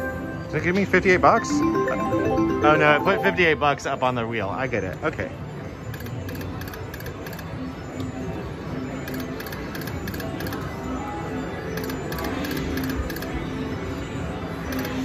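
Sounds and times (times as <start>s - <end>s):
slot machine spin music: 0.0s - 4.6s.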